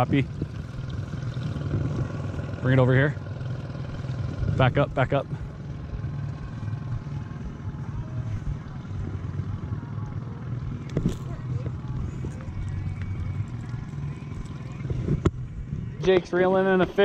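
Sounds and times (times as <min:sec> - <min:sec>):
outboard motor running: 0:00.0 - 0:17.0.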